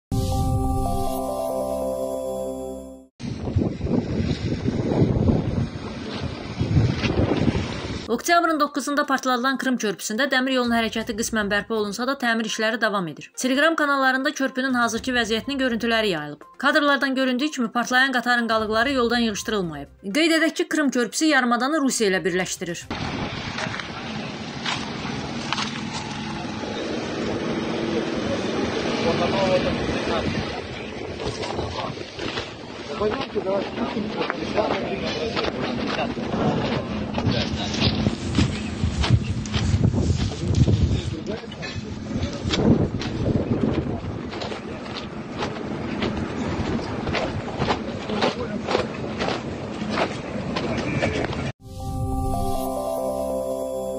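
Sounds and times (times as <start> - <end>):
wind buffeting microphone: 3.2 - 8.1, 29.7 - 51.5.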